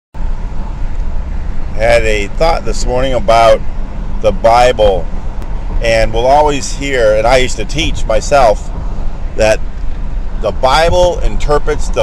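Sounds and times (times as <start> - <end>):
vehicle engine rumble: 0.2 - 12.0
man speaking: 1.8 - 3.6, 4.2 - 5.1, 5.8 - 8.6, 9.4 - 9.6, 10.4 - 12.0.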